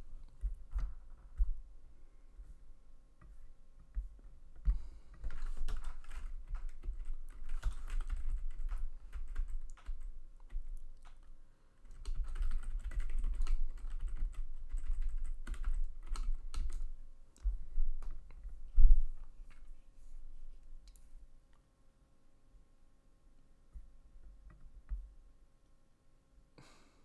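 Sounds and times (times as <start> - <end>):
quick keystrokes on keyboard: 5.2 - 11.3, 11.9 - 16.9.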